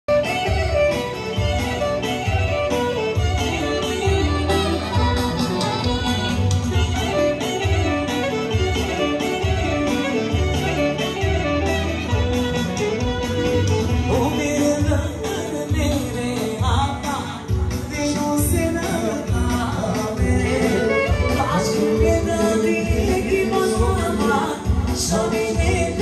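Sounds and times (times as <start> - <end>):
keyboard accompaniment with bass beat: 0.0 - 26.0
clarinet melody: 0.1 - 15.5, 20.4 - 24.4.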